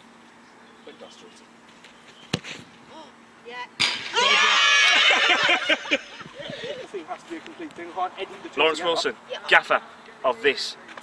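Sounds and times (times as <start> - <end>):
football kicked: 2.2 - 2.7
women shrieking and cheering: 4.0 - 6.7.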